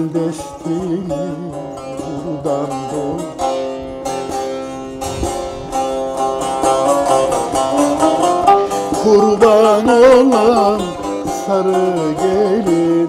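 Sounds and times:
man's wordless singing: 0.0s - 3.5s, 7.6s - 13.0s
plucked long-necked lute folk melody: 0.0s - 13.0s.

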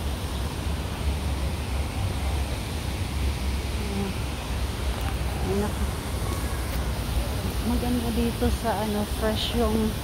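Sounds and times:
outdoor noise hiss: 0.0s - 10.0s.

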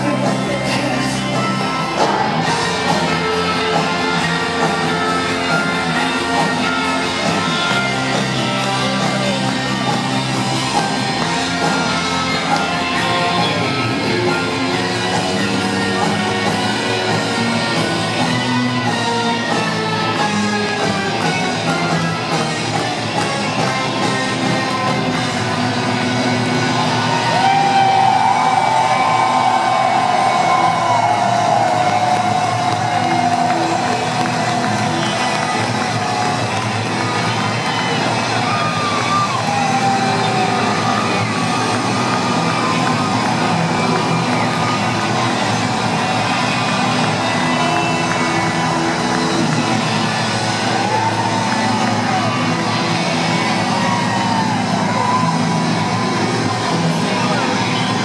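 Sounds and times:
crowd cheering: 0.0s - 58.0s
live rock band playing: 0.0s - 58.0s.

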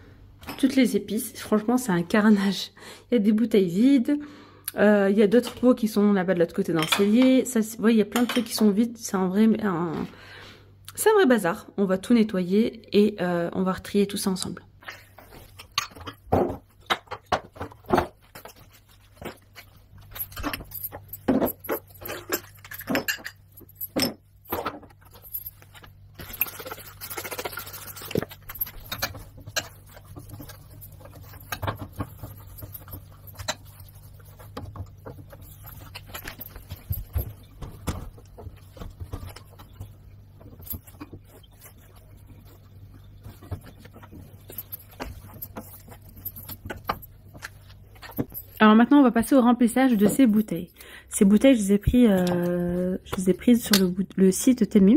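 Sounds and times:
faint low hum: 0.0s - 54.9s
glass jars clinking: 15.5s - 39.9s.

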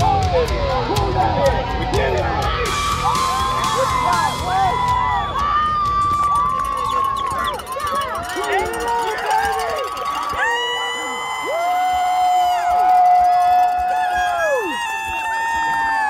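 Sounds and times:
voices calling and shouting: 0.0s - 11.4s
long drawn-out yells: 0.0s - 16.0s.

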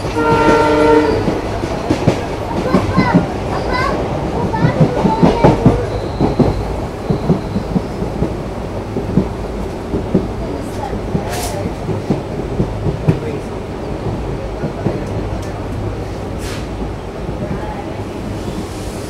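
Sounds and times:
train wheels clattering over joints: 0.0s - 18.4s
diesel locomotive rumble: 0.0s - 19.0s
brief hiss: 16.4s - 16.7s.

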